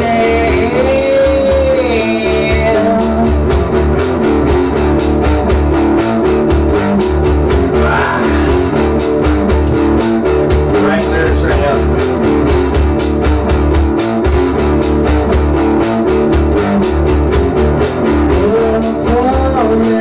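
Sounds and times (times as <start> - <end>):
rock music with guitar and drums: 0.0 - 20.0.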